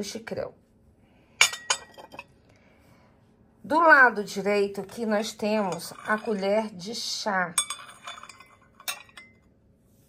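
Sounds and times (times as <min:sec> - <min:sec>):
teacup clinking on saucer: 0:07.6 - 0:09.4.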